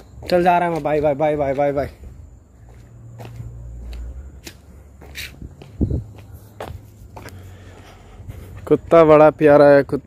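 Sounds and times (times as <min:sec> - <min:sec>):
footsteps on paved road: 0:00.0 - 0:10.0.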